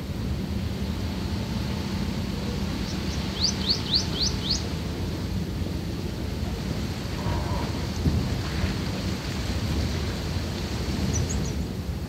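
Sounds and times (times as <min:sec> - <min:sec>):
wind buffeting microphone: 0:05.7 - 0:12.0.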